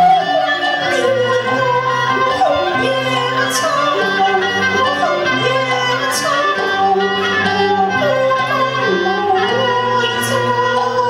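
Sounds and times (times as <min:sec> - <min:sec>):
bowed string ensemble: 0:00.0 - 0:11.0
woman singing opera: 0:00.0 - 0:11.0.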